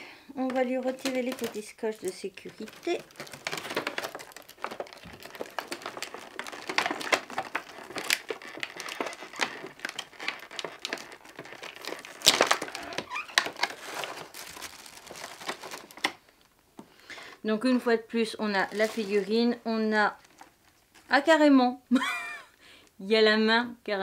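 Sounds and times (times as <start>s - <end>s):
plastic packaging crinkling: 0.4s - 17.4s, 18.3s - 21.4s.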